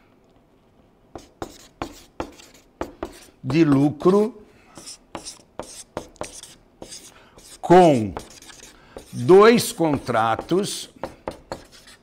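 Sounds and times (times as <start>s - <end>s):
marker pen writing on paper: 1.2s - 12.0s.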